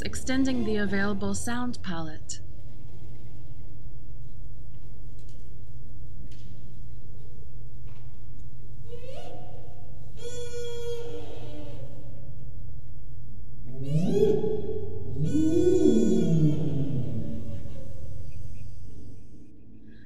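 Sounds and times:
low moaning sliding calls: 8.9 - 12.2, 13.7 - 20.0
low drone: 10.2 - 20.0.

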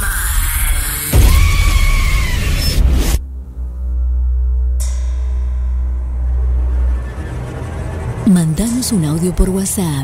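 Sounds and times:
deep rumbling drone: 0.0 - 10.0
stuttering low rumble: 2.8 - 10.0.

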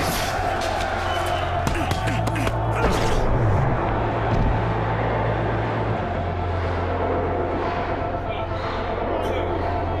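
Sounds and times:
steady low drone: 2.6 - 10.0.

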